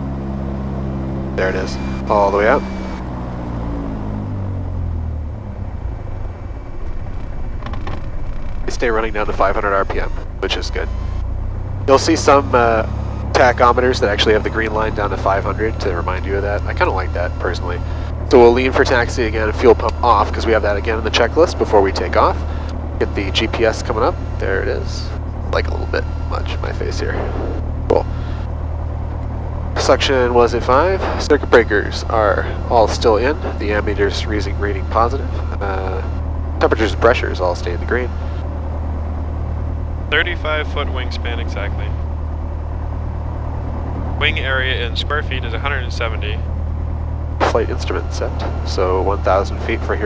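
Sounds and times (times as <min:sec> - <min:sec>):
aircraft engine winding down to idle: 0:00.0 - 0:50.0.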